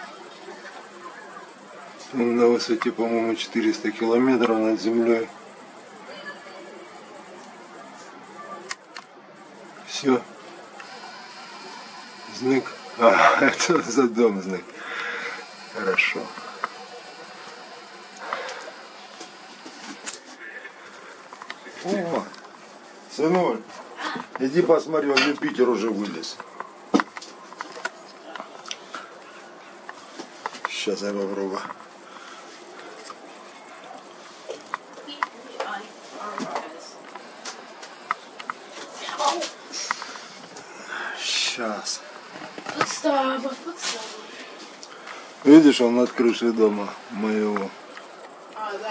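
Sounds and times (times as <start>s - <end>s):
crickets chirring: 0.0s - 48.9s.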